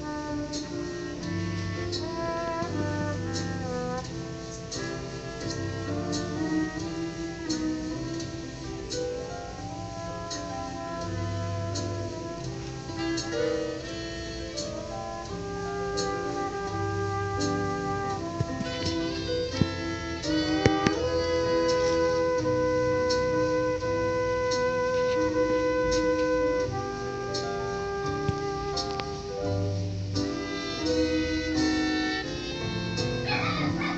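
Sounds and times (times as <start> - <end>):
backing band: 0.0 - 33.9
light percussion strokes: 0.0 - 33.9
trombone playing slow melody: 0.0 - 33.9.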